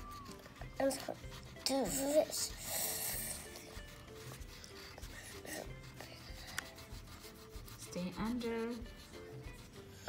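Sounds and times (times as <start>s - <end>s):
crayon rubbing on paper: 0.0s - 10.0s
quiet background music: 0.0s - 10.0s.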